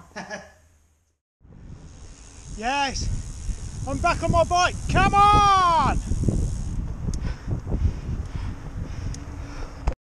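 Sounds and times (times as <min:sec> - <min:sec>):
wind buffeting microphone: 0:01.4 - 0:09.9.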